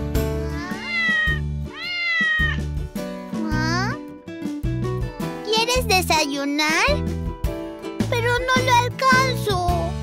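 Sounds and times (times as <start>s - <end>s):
cat meowing: 0.4s - 2.7s
children's music with bass beat: 2.5s - 10.0s.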